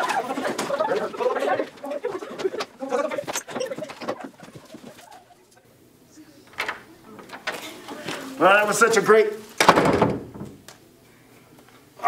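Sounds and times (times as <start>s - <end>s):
young people chattering and laughing: 0.0s - 8.7s.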